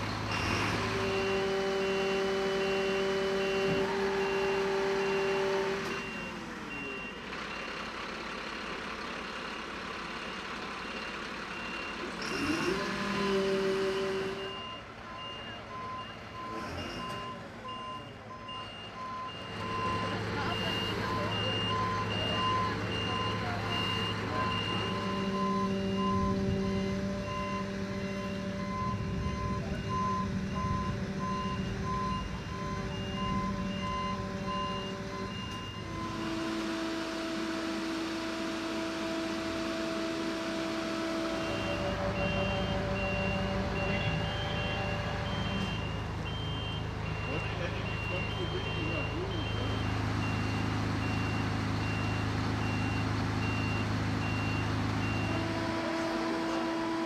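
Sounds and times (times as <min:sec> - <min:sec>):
diesel engine running: 0:00.0 - 0:57.0
electronic warning beeps: 0:14.0 - 0:36.3, 0:41.4 - 0:55.4.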